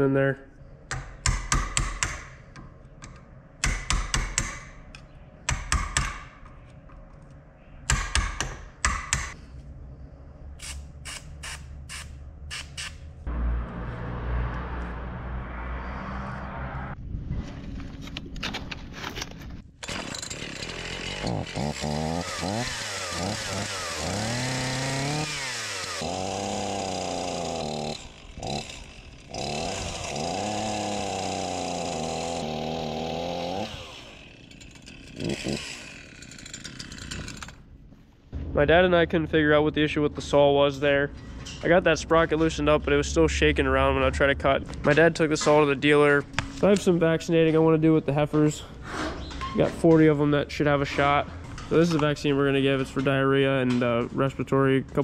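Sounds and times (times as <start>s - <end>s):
chainsaw revving: 19.8s - 37.6s.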